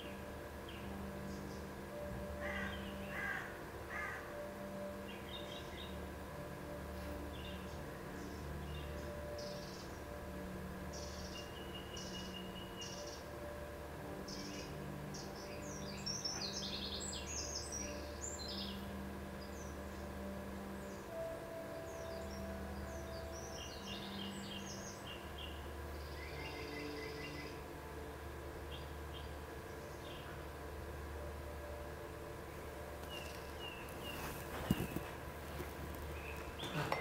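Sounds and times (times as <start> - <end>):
birds chirping and trilling: 0.0 - 37.0
low room hum: 0.0 - 37.0.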